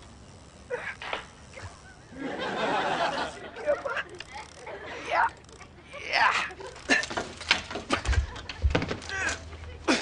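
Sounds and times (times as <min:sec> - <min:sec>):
studio audience laughter: 0:02.1 - 0:04.9.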